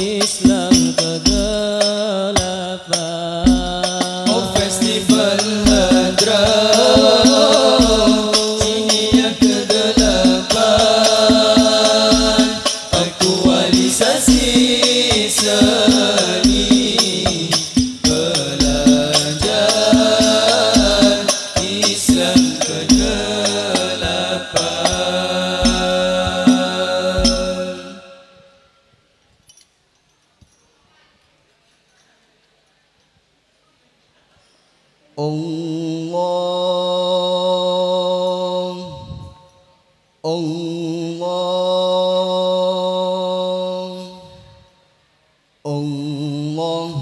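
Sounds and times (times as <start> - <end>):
frame drums beating: 0.0 - 28.0
group of voices chanting: 4.3 - 28.3.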